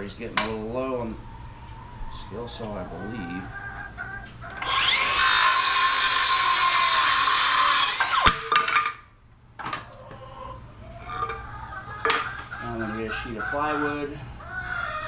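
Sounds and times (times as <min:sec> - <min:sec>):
circular saw cutting wood: 0:04.6 - 0:08.5.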